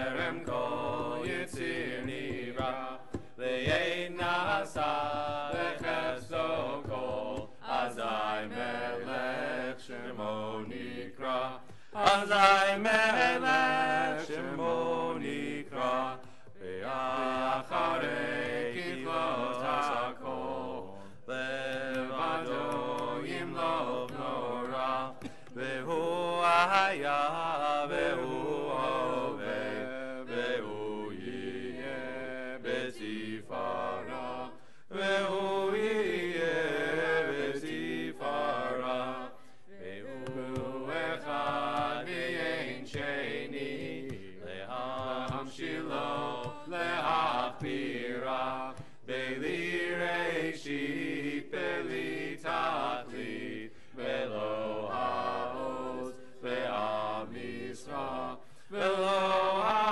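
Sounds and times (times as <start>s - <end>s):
voices chanting a prayer: 0.0s - 59.9s.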